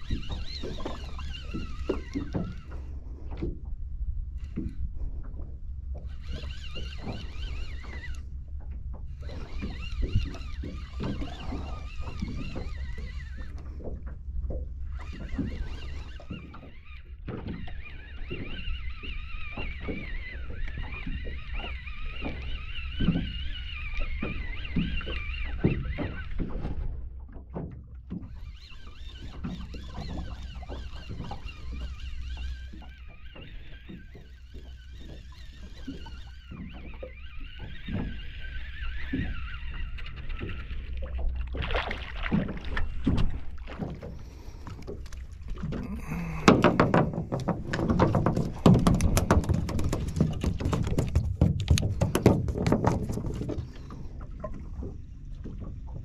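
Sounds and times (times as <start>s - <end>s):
fishing reel whirring: 0.0s - 3.0s, 5.9s - 14.1s, 14.8s - 26.9s, 28.0s - 41.6s, 42.4s - 54.2s
water knocking against hull: 0.0s - 3.9s, 4.5s - 56.0s
thumps of fish on boat: 44.9s - 53.8s.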